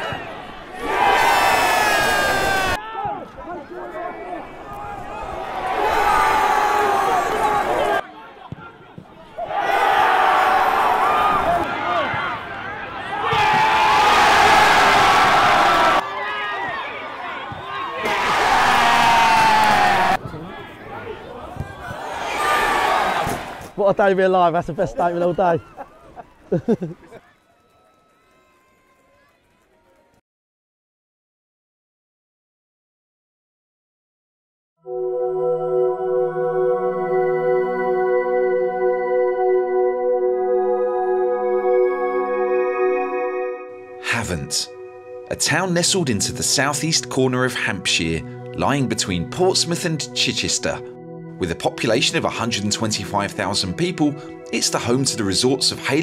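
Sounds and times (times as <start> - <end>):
football crowd cheering and shouting: 0.0 - 30.1.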